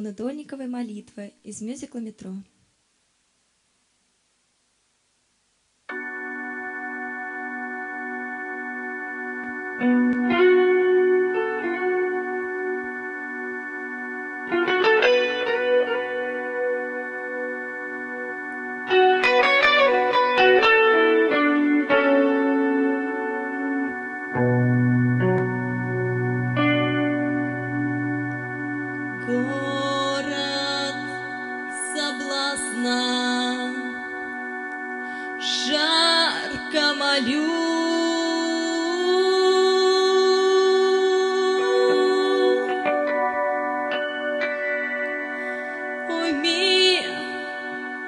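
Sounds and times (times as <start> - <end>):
instrumental music with sustained chords: 5.9 - 48.0
single plucked notes: 18.9 - 31.4.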